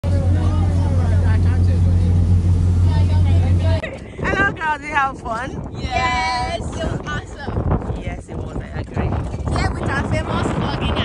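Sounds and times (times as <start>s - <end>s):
motorboat engine drone: 0.0s - 4.5s
wind and water rushing: 0.0s - 11.0s.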